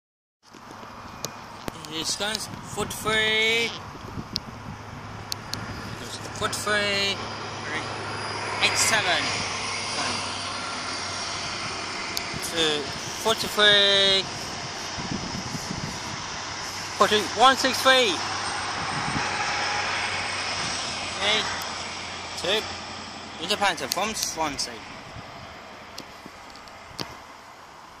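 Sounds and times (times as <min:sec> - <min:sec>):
outdoor background noise: 0:00.4 - 0:28.0
diesel locomotive drone: 0:00.6 - 0:28.0.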